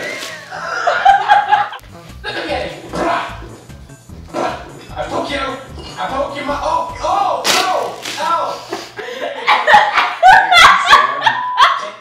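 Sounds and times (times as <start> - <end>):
women laughing: 0.0 - 2.4, 8.5 - 12.0.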